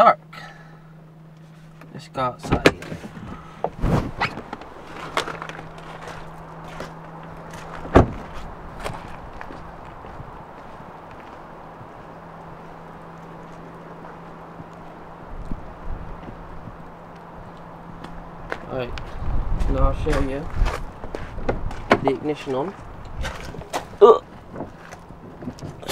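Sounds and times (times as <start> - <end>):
car door thud: 2.4 - 3.1, 7.8 - 8.4
footsteps on wet ground: 4.4 - 25.9.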